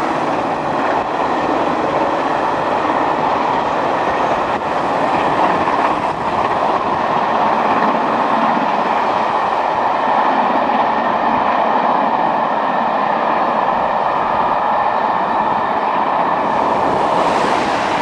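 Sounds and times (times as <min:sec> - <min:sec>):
steam locomotive exhaust rush: 0:13.7 - 0:18.0.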